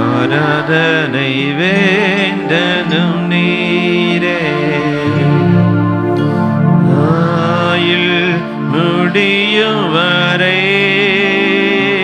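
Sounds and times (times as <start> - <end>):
man singing into microphone: 0.0 - 12.0
sustained keyboard chords: 0.0 - 12.0.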